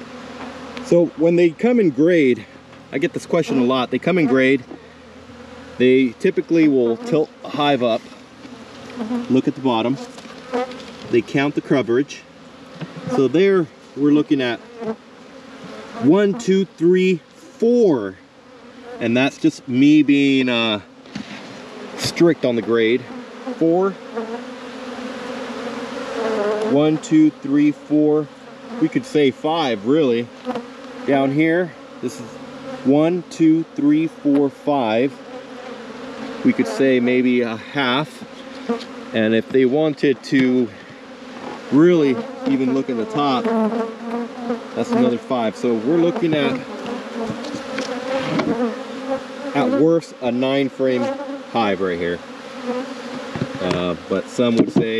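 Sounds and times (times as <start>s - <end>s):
honeybees buzzing: 0.0s - 54.9s.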